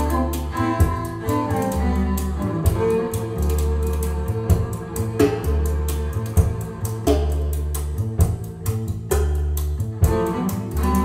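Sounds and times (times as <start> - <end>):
plucked bass line: 0.0 - 11.0.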